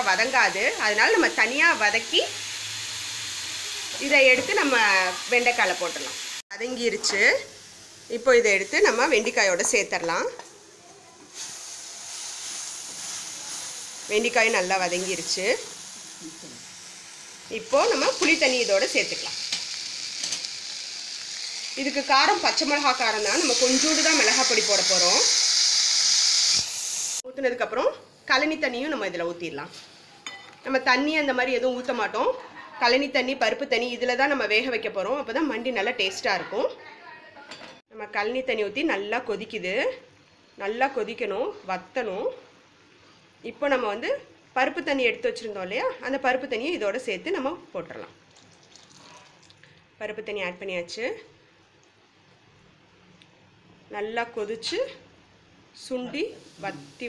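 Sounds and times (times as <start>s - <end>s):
woman talking: 0.0s - 2.4s, 3.9s - 7.5s, 17.5s - 19.4s, 21.8s - 25.3s, 53.9s - 55.0s, 55.8s - 57.0s
vegetables sizzling in a pot: 0.0s - 27.3s, 28.0s - 34.6s, 48.2s - 49.8s, 55.8s - 57.0s
woman speaking: 17.5s - 19.4s, 21.8s - 25.3s, 55.8s - 57.0s
liquid pouring into a pot: 48.3s - 49.7s.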